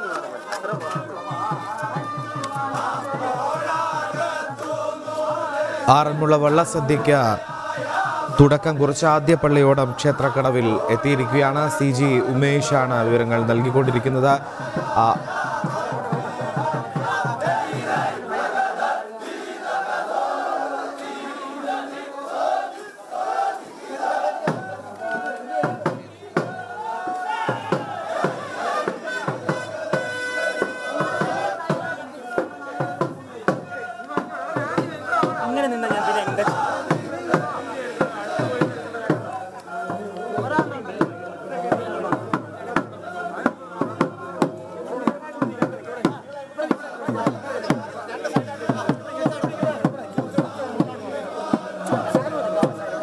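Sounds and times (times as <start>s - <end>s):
many voices chanting: 0.0s - 53.0s.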